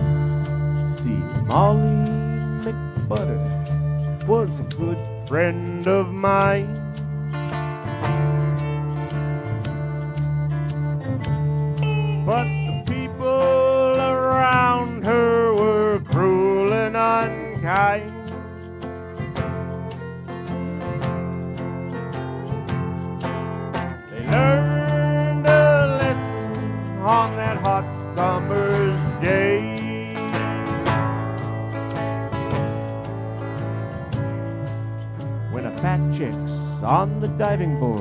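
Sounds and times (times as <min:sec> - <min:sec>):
guitar: 0:00.0 - 0:38.0
sliding guitar lead line: 0:00.0 - 0:38.0
steady drumbeat: 0:00.0 - 0:38.0
gliding melody line: 0:11.8 - 0:13.9.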